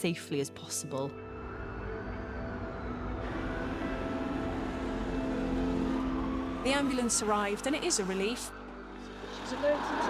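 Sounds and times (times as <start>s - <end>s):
sustained music tones: 1.1s - 10.0s.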